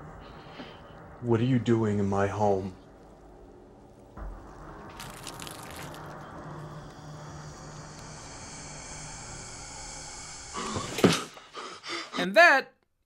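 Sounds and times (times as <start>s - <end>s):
hissing drone: 0.0s - 12.0s.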